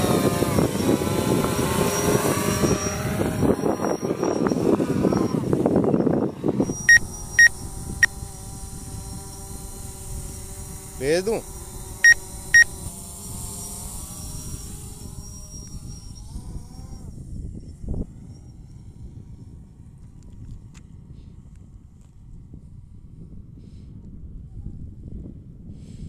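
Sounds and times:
drone propellers humming: 0:00.0 - 0:20.0
short sharp electronic beeps: 0:06.7 - 0:07.6, 0:12.0 - 0:12.8.

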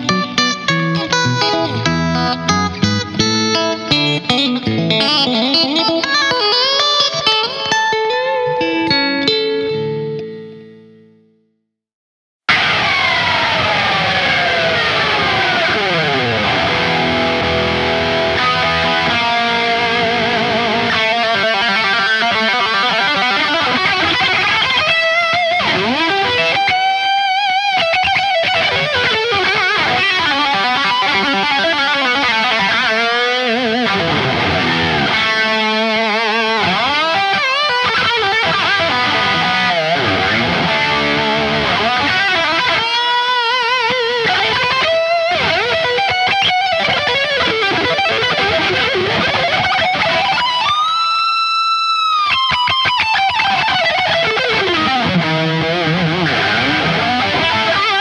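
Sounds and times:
distorted electric guitar solo: 0:00.0 - 0:11.2, 0:12.5 - 0:58.0.

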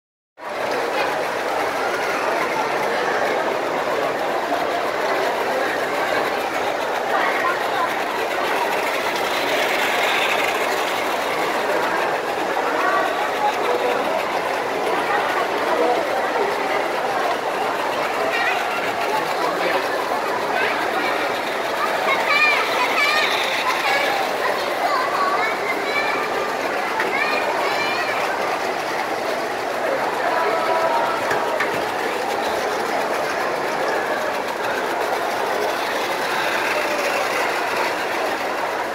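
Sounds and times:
children chattering: 0:00.4 - 0:38.9
toy trains clattering on track: 0:00.4 - 0:38.9.

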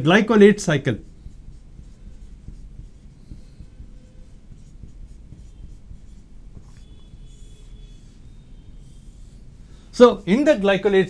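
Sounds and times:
low steady hum: 0:00.0 - 0:11.0
marker scratching on whiteboard: 0:00.0 - 0:11.0
marker squeaks: 0:00.4 - 0:10.6.

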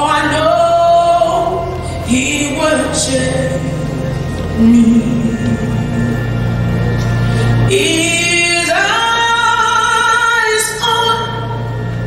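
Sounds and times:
woman singing into microphone: 0:00.0 - 0:06.4, 0:07.7 - 0:11.8.

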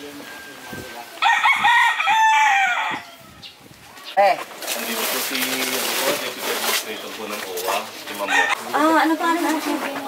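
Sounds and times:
rooster crowing: 0:01.2 - 0:03.4, 0:08.2 - 0:08.8.

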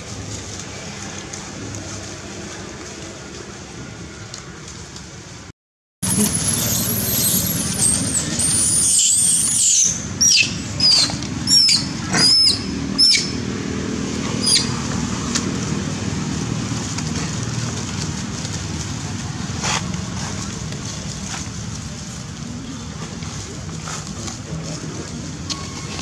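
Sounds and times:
monkeys screaming: 0:06.1 - 0:13.4, 0:14.3 - 0:14.8.

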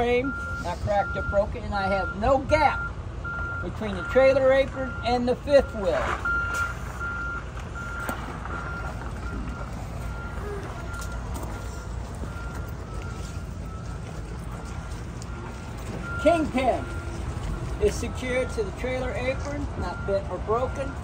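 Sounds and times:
low vehicle rumble: 0:00.0 - 0:21.0
reversing alarm beeping: 0:00.0 - 0:21.0.

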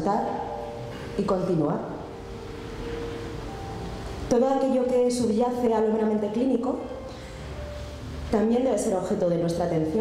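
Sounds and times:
room noise hiss: 0:00.0 - 0:10.0
soft background music: 0:00.0 - 0:10.0.

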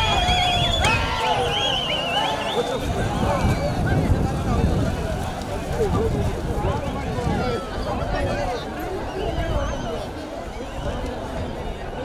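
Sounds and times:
warbling whistle: 0:00.0 - 0:03.2.

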